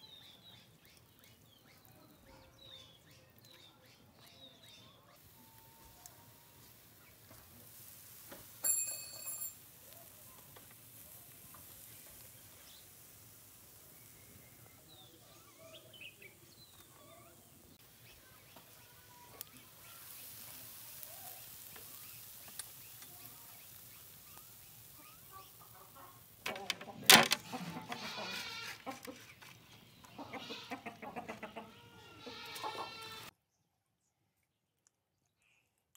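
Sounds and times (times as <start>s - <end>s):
fish sizzling on grill: 0.0s - 33.3s.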